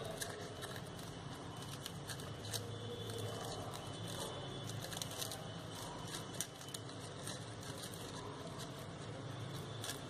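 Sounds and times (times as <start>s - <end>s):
crepe paper crinkling: 0.0s - 10.0s.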